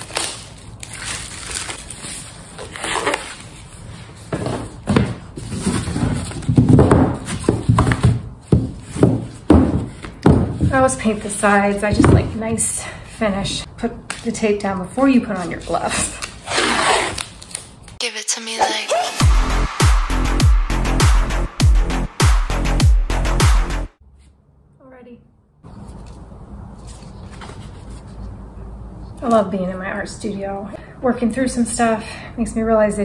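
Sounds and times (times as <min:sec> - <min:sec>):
plastic shrink-wrap crinkling: 0:00.0 - 0:03.6
tape tearing off roll: 0:00.0 - 0:03.6, 0:16.2 - 0:17.7.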